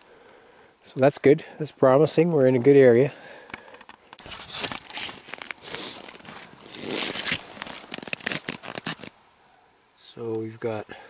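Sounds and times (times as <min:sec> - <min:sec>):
footsteps crunching in snow: 0:04.2 - 0:09.1.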